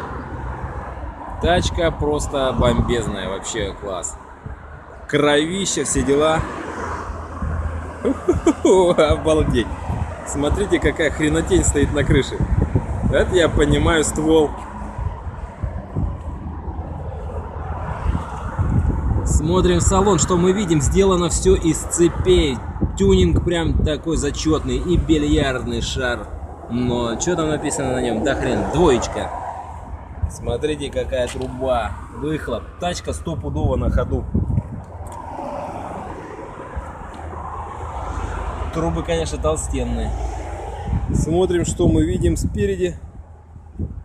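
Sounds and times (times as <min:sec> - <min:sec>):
street traffic rumble: 0:00.0 - 0:44.0
wind buffeting microphone: 0:00.0 - 0:44.0.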